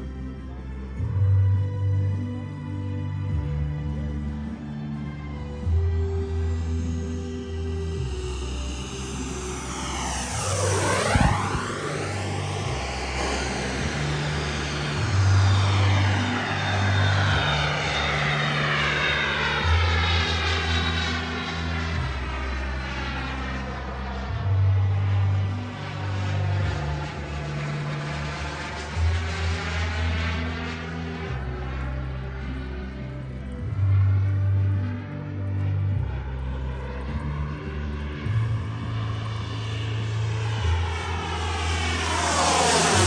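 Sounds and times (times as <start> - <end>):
background music with deep bass: 0.0 - 43.0
model jet turbine whine: 4.0 - 43.0.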